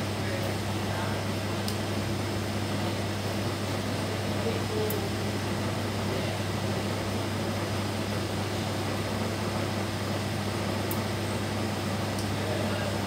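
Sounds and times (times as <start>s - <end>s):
equipment hum and fan hiss: 0.0s - 13.0s.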